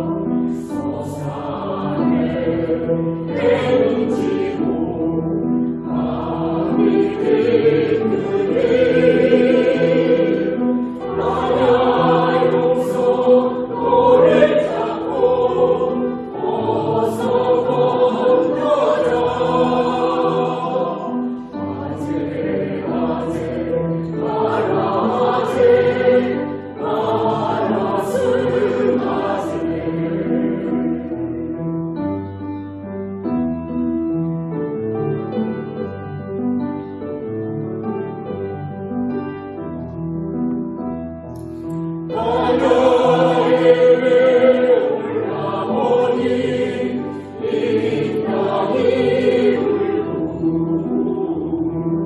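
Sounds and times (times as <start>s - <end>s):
mixed choir singing a hymn: 0.0s - 31.7s, 42.0s - 52.0s.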